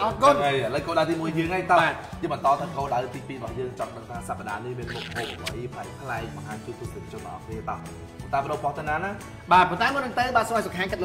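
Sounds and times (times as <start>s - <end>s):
background music with low notes: 0.0s - 11.0s
man talking: 4.6s - 6.0s.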